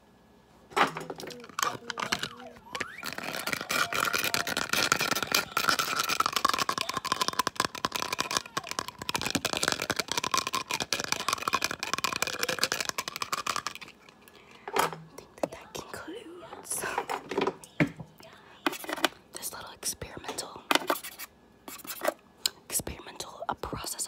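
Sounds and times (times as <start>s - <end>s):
marker crackling and clicking: 1.0s - 14.2s, 18.7s - 19.7s, 20.4s - 22.2s.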